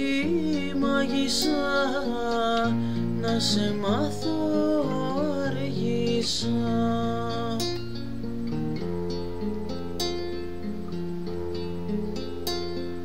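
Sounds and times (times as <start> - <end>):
plucked string instrument notes: 0.0 - 13.0.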